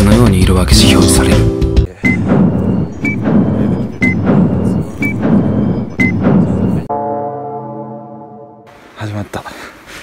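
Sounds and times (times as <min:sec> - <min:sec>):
long horn-like tone: 0:06.9 - 0:08.7.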